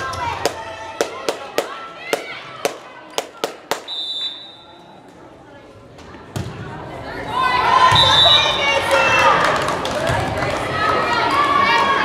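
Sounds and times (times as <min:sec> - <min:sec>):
sharp hand claps: 0:02.7 - 0:03.9
referee's whistle blast: 0:03.8 - 0:04.8.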